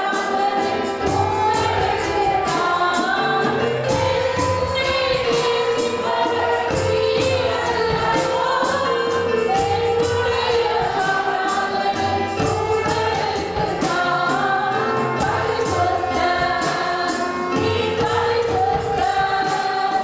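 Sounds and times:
violin: 0.0s - 20.0s
woman singing into a microphone: 0.0s - 20.0s.

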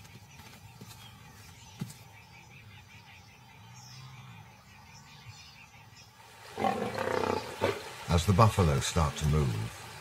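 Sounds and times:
lioness snarling: 6.6s - 7.9s.

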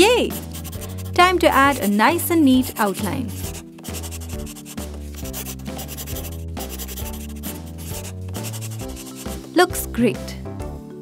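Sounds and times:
marker rubbing across paper: 0.0s - 9.6s
light background music: 0.0s - 11.0s.

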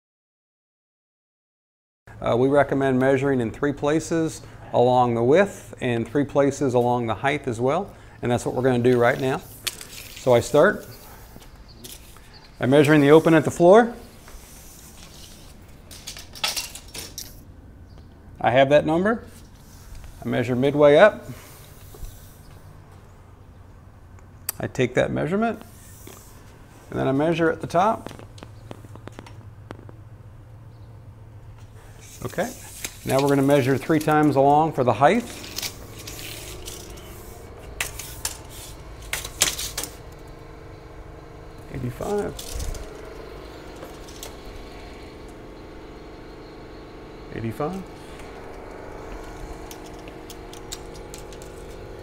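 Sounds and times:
metal tape measure rattling: 9.0s - 10.9s, 14.7s - 17.4s, 32.0s - 34.4s, 35.1s - 40.0s, 42.0s - 44.6s, 49.3s - 51.8s
tape measure clicks and rattles: 32.0s - 34.4s, 35.3s - 40.0s, 42.0s - 43.1s.

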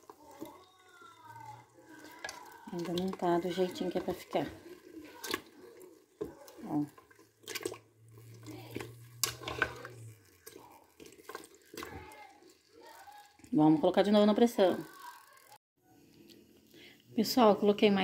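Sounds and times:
broth dripping and sloshing: 0.0s - 13.6s.

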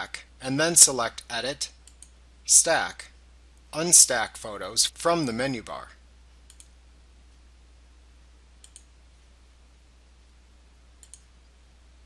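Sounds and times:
low steady hum: 0.0s - 12.0s
faint computer mouse clicks: 1.8s - 2.2s, 6.5s - 6.8s, 8.6s - 8.9s, 11.0s - 11.3s.

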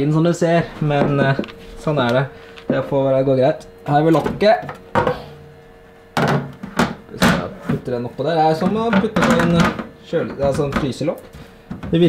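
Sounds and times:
printer low hum: 0.0s - 12.0s
plastic lid thunk: 6.2s - 7.5s.

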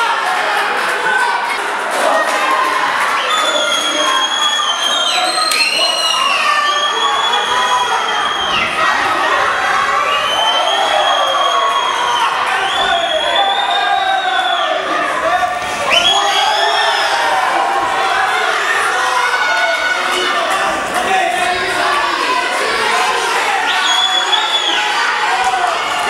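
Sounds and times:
crowd cheering and shouting: 0.0s - 26.0s.

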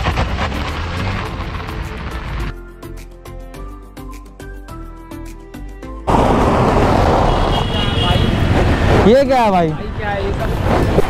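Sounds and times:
car engine running: 0.0s - 2.5s
music: 0.0s - 6.1s
wind on microphone: 10.3s - 11.0s.

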